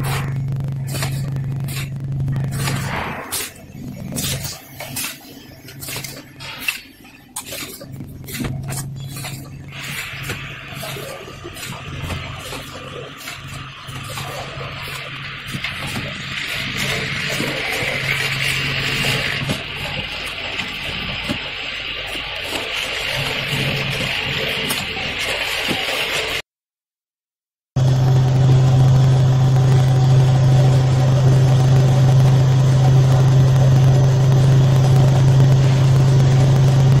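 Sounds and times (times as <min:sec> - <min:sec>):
low machine hum: 0:00.0 - 0:26.4, 0:27.8 - 0:37.0
machine hum and whir: 0:00.0 - 0:26.4, 0:27.8 - 0:37.0.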